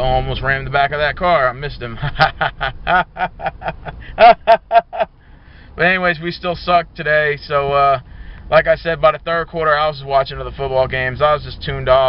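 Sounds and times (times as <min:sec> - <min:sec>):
man laughing hard: 0:01.9 - 0:05.1.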